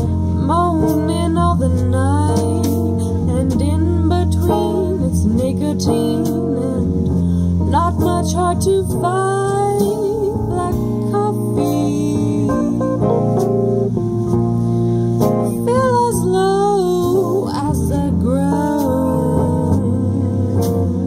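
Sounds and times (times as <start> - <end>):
acoustic guitar: 0.0 - 21.0
drums: 0.0 - 21.0
woman singing with vibrato: 0.1 - 7.1, 7.7 - 13.1, 15.5 - 21.0.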